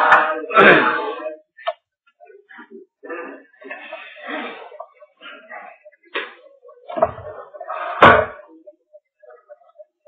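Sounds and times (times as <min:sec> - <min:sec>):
person clearing throat: 0:00.3 - 0:01.2.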